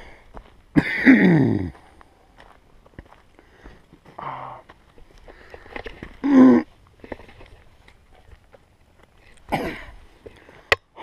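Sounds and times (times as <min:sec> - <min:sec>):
footsteps on rocky dirt trail: 0:00.0 - 0:11.0.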